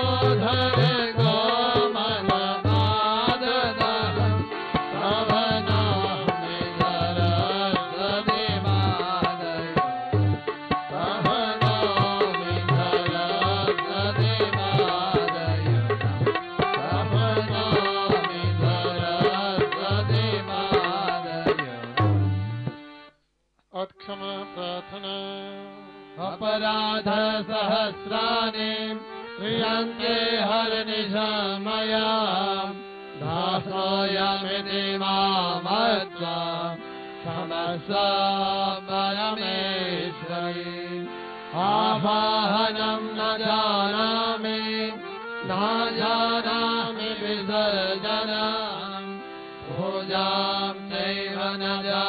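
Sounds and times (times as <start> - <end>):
devotional mantra chanting: 0.0 - 22.8, 23.7 - 52.0.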